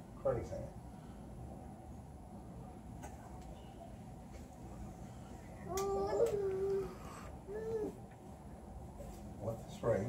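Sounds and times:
drawn-out wavering vocal call: 0:05.3 - 0:08.0.

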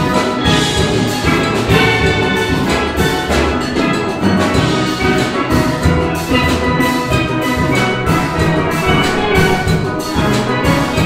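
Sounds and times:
drum kit: 0:00.0 - 0:11.0
steelpans playing: 0:00.0 - 0:11.0.

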